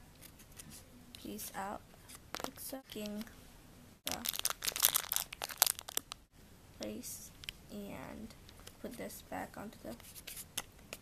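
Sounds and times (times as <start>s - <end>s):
plastic wrapper crinkling: 2.3s - 3.2s, 4.1s - 6.3s.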